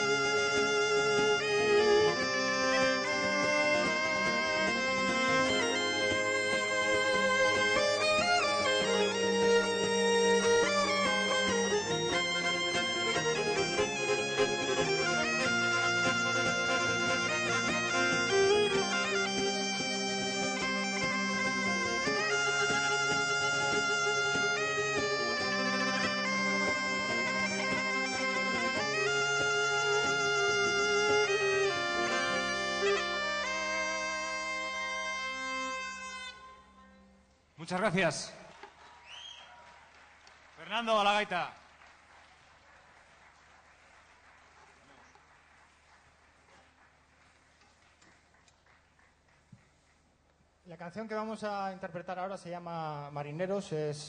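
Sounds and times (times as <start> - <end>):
folk instrument ornamented melody: 0.0 - 38.1.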